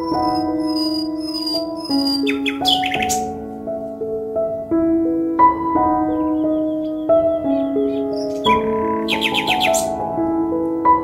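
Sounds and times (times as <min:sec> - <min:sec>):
high bird-like chirps: 0:00.0 - 0:03.4, 0:06.1 - 0:10.0
gentle piano music: 0:00.0 - 0:11.0.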